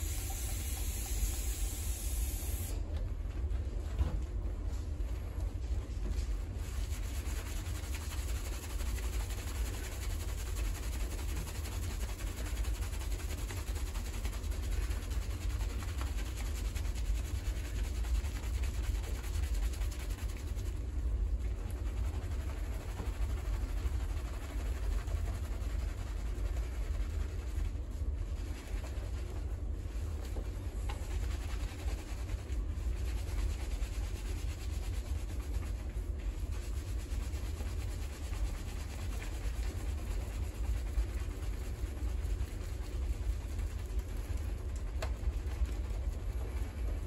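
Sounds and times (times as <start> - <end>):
steady low rumble: 0.0 - 47.0.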